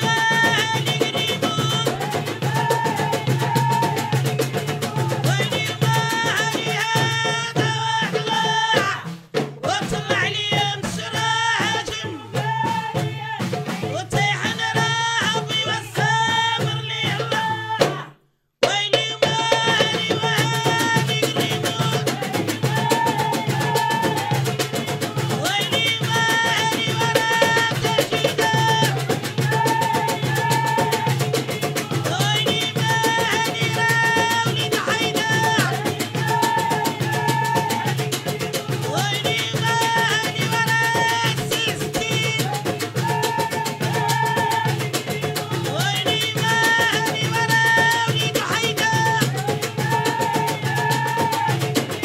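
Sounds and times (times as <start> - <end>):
fast hand drumming: 0.0 - 52.0
women singing: 0.0 - 52.0.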